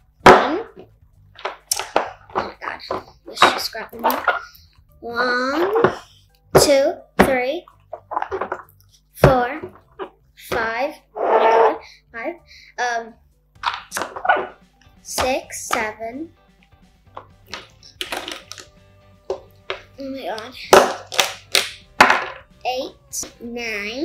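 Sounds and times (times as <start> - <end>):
girl counting aloud: 5.0 - 6.0, 9.2 - 9.8, 10.4 - 13.2, 15.1 - 16.4, 20.0 - 20.8, 22.6 - 24.0.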